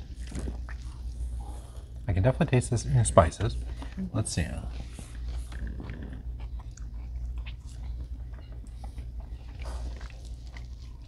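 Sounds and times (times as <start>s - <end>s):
chewing and biting food: 0.0s - 2.1s, 4.6s - 11.0s
low steady hum: 0.0s - 11.0s.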